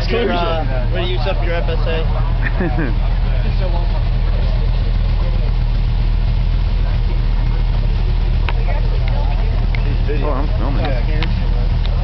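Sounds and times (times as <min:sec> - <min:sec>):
race car engines idling: 0:00.0 - 0:12.0.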